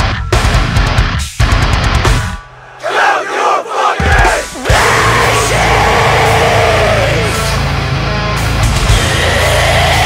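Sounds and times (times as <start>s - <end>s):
heavy metal band playing: 0.0s - 2.4s, 3.9s - 10.0s
shouted vocals: 2.6s - 7.7s, 8.9s - 10.0s.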